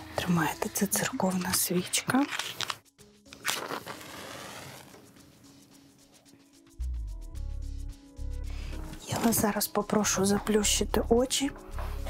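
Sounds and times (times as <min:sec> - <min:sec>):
match flaring with hiss: 0:02.3 - 0:06.6.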